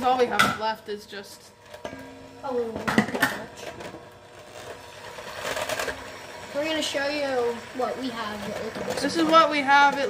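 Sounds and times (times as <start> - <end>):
electric hand mixer whirring: 0.0 - 10.0
beaters swishing liquid: 4.4 - 10.0.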